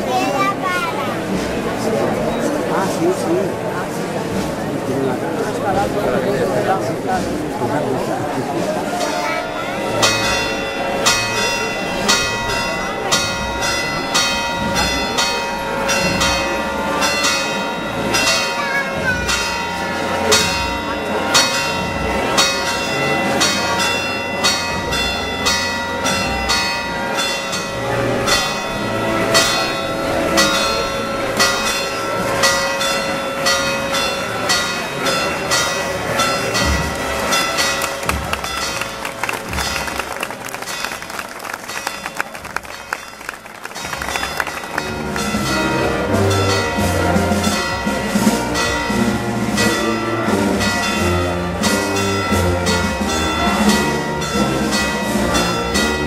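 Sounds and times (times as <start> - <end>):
church bells pealing: 0.0 - 56.0
crowd murmur: 0.0 - 56.0.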